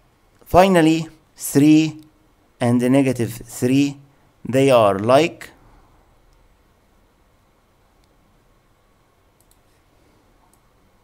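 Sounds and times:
faint clicks: 0:09.4 - 0:09.7.

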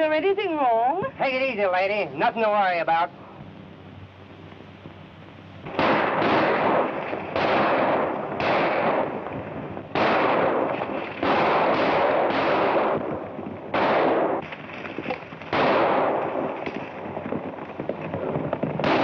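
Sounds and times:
echoing gunshots: 0:05.6 - 0:19.0.

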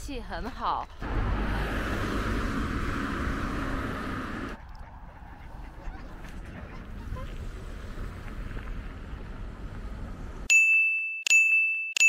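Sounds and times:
outdoor low rumble: 0:00.4 - 0:10.5
bright single-tone dings: 0:10.5 - 0:12.0.

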